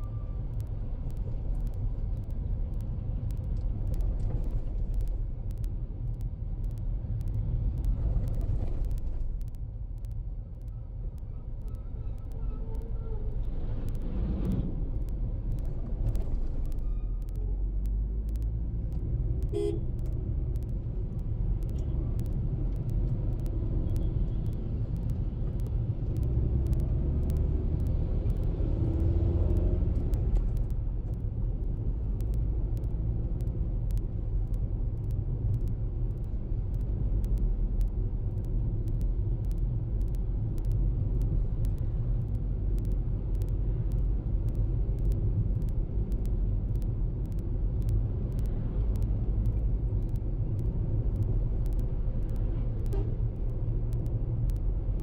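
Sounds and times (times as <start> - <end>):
car road and engine rumble: 0.0 - 55.0.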